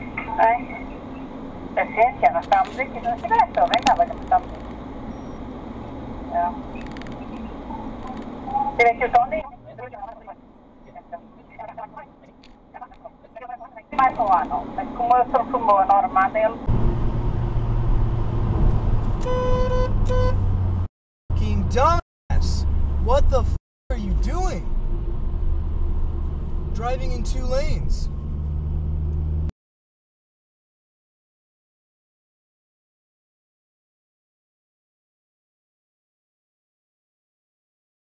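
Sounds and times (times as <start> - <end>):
car cabin road and engine noise: 0.0 - 29.5
car horn: 19.2 - 20.5.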